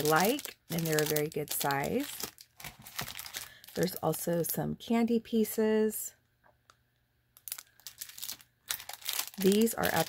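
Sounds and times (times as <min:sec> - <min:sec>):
plastic bags crinkling: 0:00.0 - 0:04.6, 0:07.4 - 0:10.0.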